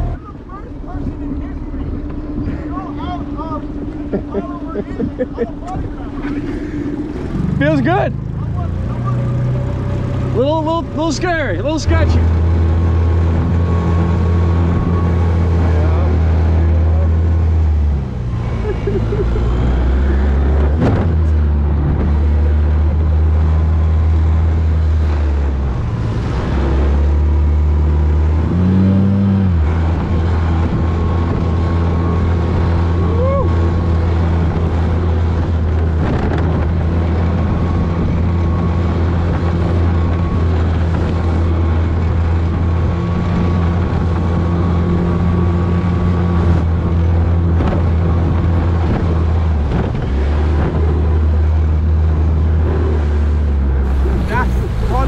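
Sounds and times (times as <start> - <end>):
motorboat engine drone: 0.0 - 55.0
wind noise on microphone: 28.2 - 55.0.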